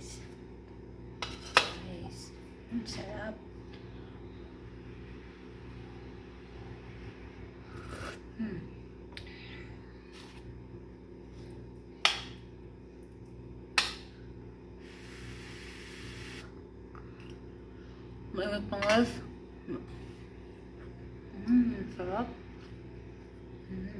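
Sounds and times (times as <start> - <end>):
steady low hum: 0.0 - 23.9.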